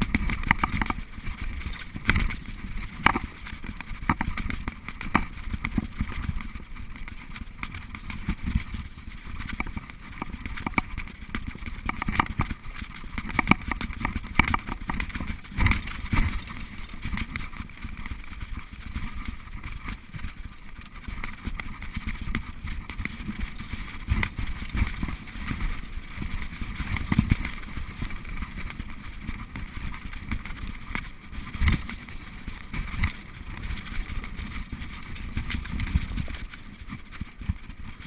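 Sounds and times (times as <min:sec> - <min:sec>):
bike knocking and rattling: 0:00.0 - 0:38.0
bike tyres rumbling on dirt trail: 0:00.0 - 0:38.0.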